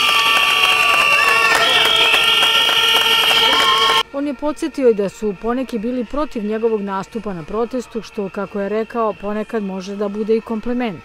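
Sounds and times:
people clapping: 0:00.0 - 0:04.0
whistles and horns blowing: 0:00.0 - 0:04.0
crowd noise: 0:00.0 - 0:11.0.

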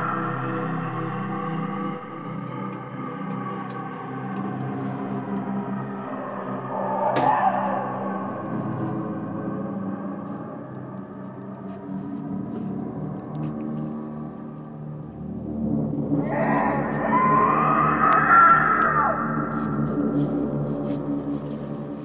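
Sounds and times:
high sustained tones: 0:00.0 - 0:10.0
low drone: 0:00.0 - 0:22.0.

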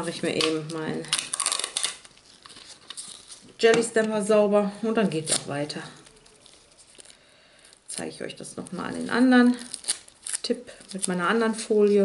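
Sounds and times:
rustling crinkling handling noise: 0:00.0 - 0:12.0.

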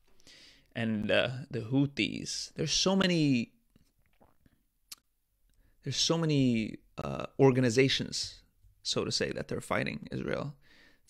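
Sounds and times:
man speaking: 0:00.8 - 0:03.6, 0:05.8 - 0:10.6.

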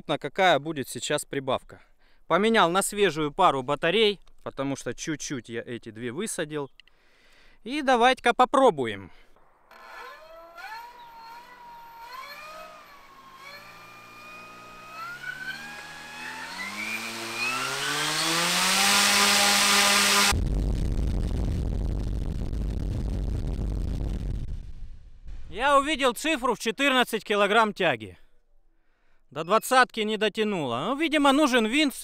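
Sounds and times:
electric motor whine rising: 0:09.4 - 0:20.4
propeller air rush: 0:09.4 - 0:20.4.

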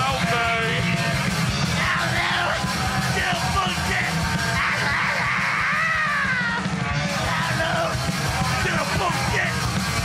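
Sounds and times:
distorted guitar and bass: 0:00.0 - 0:10.0
rapid drumming: 0:00.0 - 0:10.0
shouted vocal: 0:01.8 - 0:09.6.

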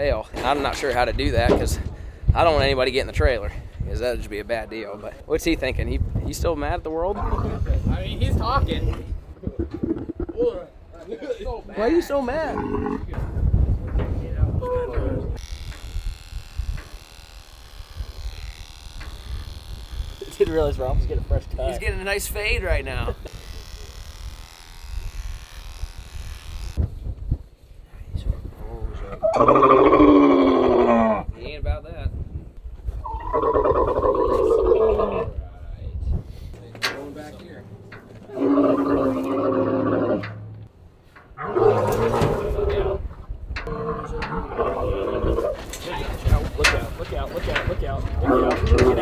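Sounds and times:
camel calling: 0:09.4 - 0:10.4, 0:29.2 - 0:31.3, 0:33.0 - 0:35.4, 0:37.8 - 0:40.6, 0:41.4 - 0:45.8, 0:48.2 - 0:49.0
electric hair clippers buzzing: 0:15.4 - 0:21.6, 0:22.8 - 0:26.8.

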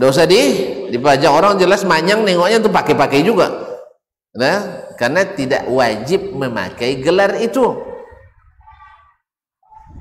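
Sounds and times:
man lecturing over microphone: 0:00.0 - 0:08.1.

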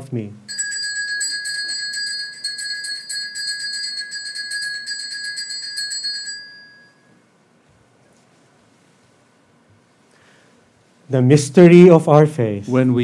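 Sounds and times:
bells jingling rapidly: 0:00.5 - 0:07.0.

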